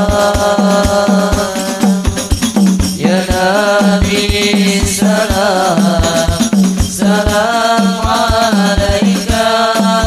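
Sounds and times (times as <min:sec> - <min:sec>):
person singing: 0:00.0 - 0:02.3, 0:03.0 - 0:10.0
bass drum: 0:00.0 - 0:10.0
frame drums: 0:00.0 - 0:10.0.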